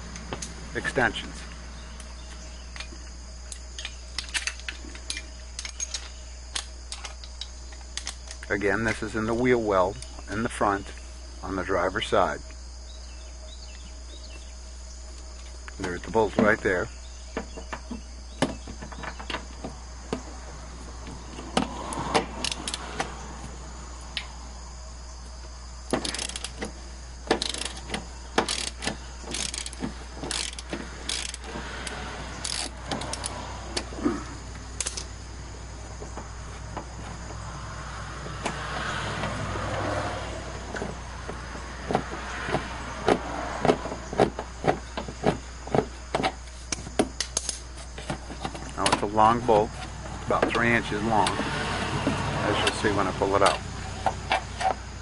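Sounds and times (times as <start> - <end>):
steady low hum: 0.0 - 55.0
hand ratchet clicking: 22.4 - 22.8, 26.0 - 26.7, 27.3 - 33.4.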